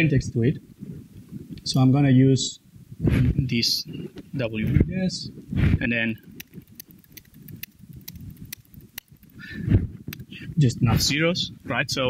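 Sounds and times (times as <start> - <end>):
man talking: 0.0 - 0.6, 3.3 - 6.2, 10.5 - 12.0
laptop keyboard typing: 6.2 - 9.5.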